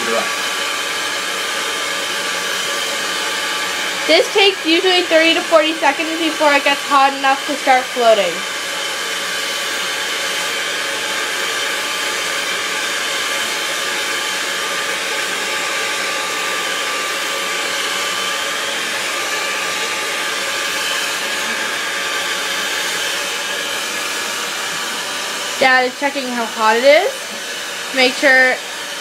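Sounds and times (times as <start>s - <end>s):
hair dryer blowing air: 0.0s - 29.0s.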